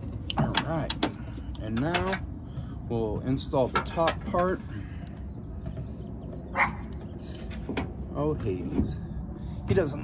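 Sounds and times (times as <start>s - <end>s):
dog barking: 6.5s - 6.9s.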